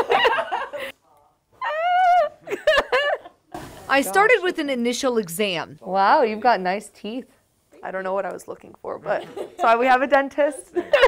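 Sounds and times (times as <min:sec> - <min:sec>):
woman squealing: 0:01.6 - 0:02.4.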